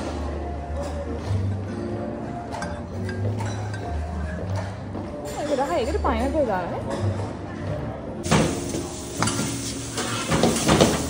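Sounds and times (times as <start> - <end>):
frying sizzle: 8.3 - 11.0.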